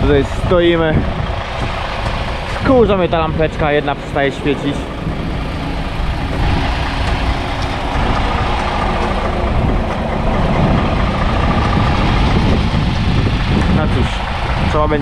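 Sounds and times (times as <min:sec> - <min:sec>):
diesel truck engine idling: 0:00.0 - 0:15.0.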